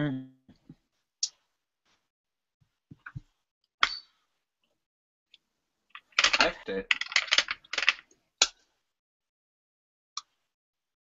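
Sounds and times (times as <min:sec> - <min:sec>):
small hard objects clattering: 0:05.9 - 0:08.0.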